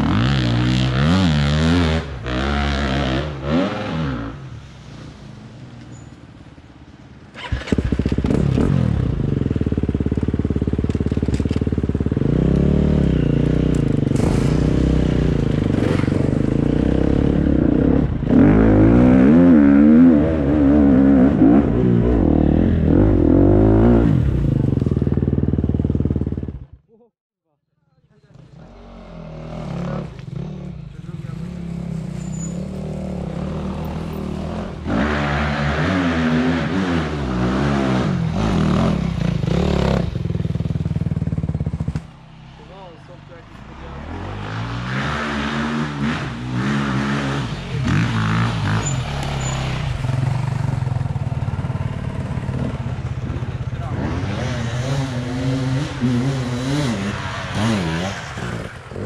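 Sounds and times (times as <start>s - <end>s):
dirt bike engines revving: 0.0s - 4.7s, 7.2s - 26.7s, 28.0s - 59.0s.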